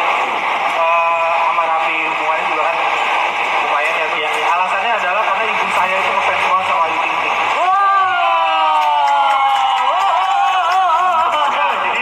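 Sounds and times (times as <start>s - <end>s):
noisy haze: 0.0s - 12.0s
man talking over loudspeaker: 0.7s - 3.0s, 3.6s - 7.6s, 10.9s - 12.0s.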